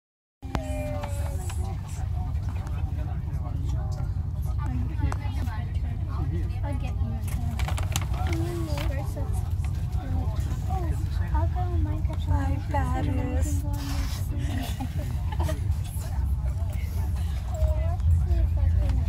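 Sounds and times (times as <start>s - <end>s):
people talking indistinctly: 0.4s - 19.0s
train car low rumble: 0.4s - 19.0s.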